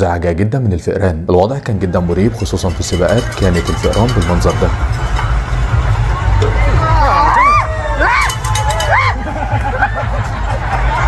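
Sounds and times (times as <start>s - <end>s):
low street rumble: 1.9s - 11.0s
spectators shrieking and cheering: 4.8s - 11.0s
high rising-and-falling yells: 5.9s - 9.4s.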